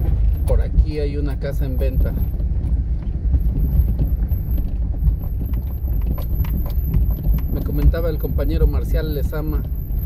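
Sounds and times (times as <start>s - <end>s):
footsteps on cobblestones: 0.0s - 10.0s
steady low rumble: 0.0s - 10.0s.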